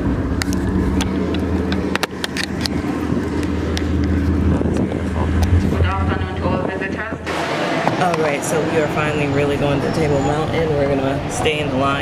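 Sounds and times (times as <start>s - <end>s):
bus engine idling: 0.0s - 12.0s
voices: 3.8s - 12.0s.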